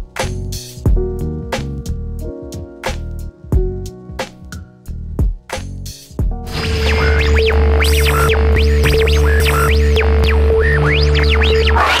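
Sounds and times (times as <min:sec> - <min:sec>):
low bass drone: 0:06.3 - 0:12.0
glitchy synth sweeps: 0:06.5 - 0:12.0
swooping synthesizer glides: 0:06.5 - 0:12.0.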